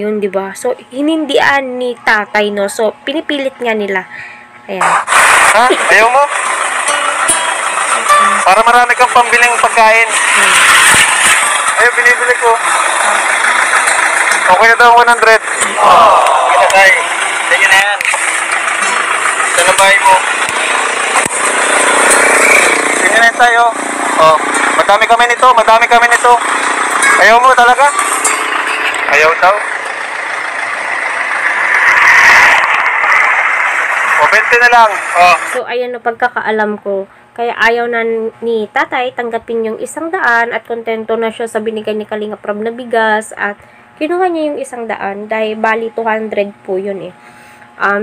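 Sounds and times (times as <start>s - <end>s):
vehicle road noise: 4.4s - 35.6s.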